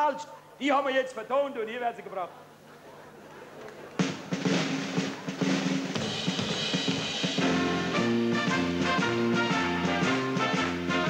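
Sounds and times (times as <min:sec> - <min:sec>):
live band playing: 0:04.0 - 0:11.0.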